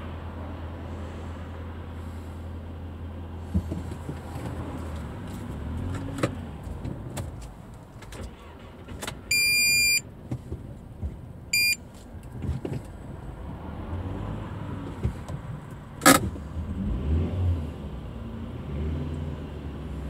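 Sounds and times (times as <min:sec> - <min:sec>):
car engine running: 0:00.9 - 0:13.6
high-pitched electronic beep: 0:09.3 - 0:10.0, 0:11.6 - 0:11.8.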